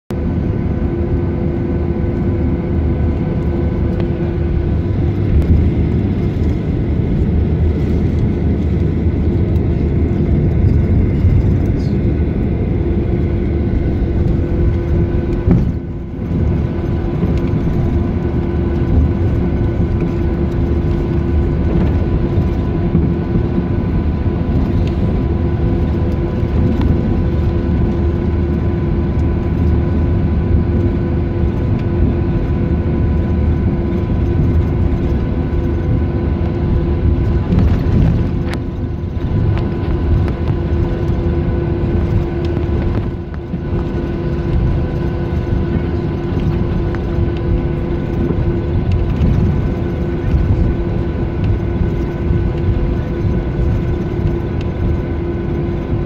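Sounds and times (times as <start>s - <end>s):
jet airliner cabin rumble: 0.1s - 56.0s
jet engine whine: 0.1s - 56.0s.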